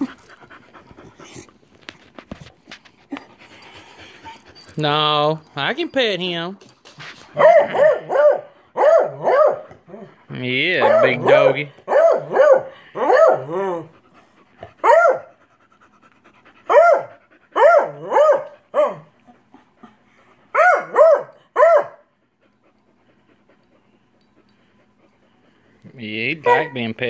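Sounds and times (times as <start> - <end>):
dog barking high-pitched: 7.4 - 9.6, 10.8 - 13.6, 14.8 - 15.3, 16.7 - 19.1, 20.5 - 22.0, 26.4 - 26.9.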